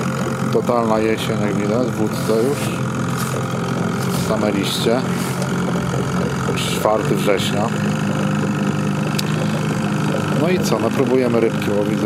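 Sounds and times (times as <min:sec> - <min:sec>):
outboard motor running: 0:00.0 - 0:12.0.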